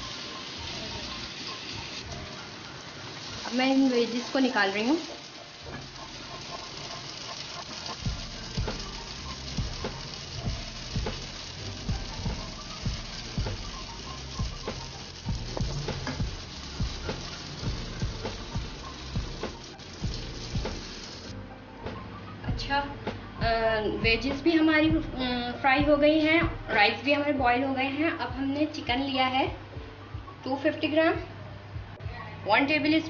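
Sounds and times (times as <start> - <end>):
vegetables sizzling in hot oil: 0.0 - 21.4.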